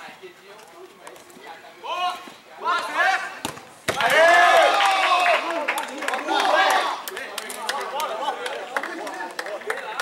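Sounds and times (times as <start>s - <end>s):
loud shout: 4.0s - 7.1s.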